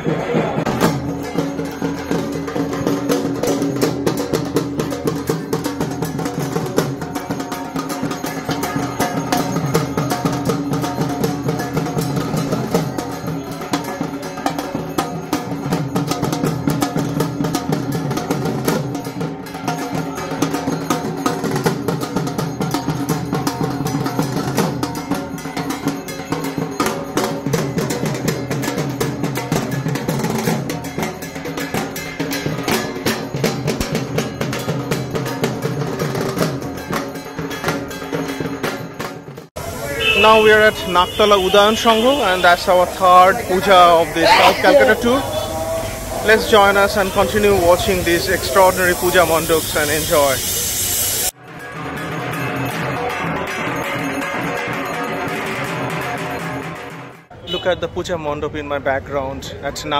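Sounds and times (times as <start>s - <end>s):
barrel drums played fast: 0.0s - 57.6s.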